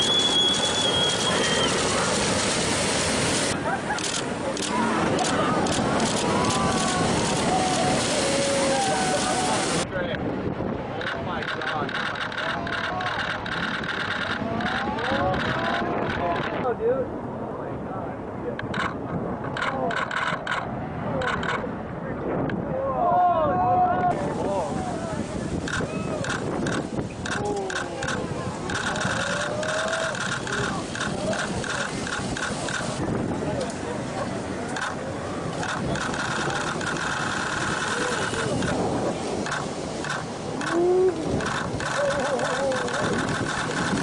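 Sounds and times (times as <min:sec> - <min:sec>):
rush of wind and water: 0:00.0 - 0:44.0
voices yelling whoops: 0:04.7 - 0:09.8, 0:22.8 - 0:25.2, 0:29.2 - 0:30.2
rapid chattering pulse: 0:11.0 - 0:16.6, 0:25.7 - 0:33.0, 0:35.6 - 0:38.8, 0:39.4 - 0:44.0.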